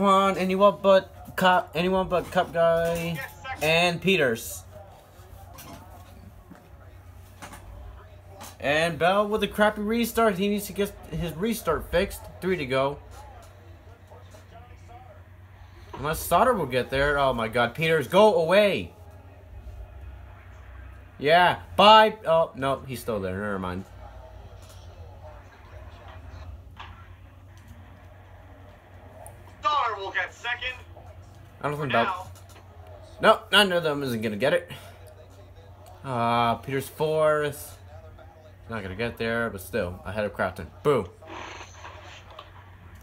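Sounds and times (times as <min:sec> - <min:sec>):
steady low hum: 0:00.0 - 0:43.0
truck race broadcast on television: 0:00.0 - 0:43.0.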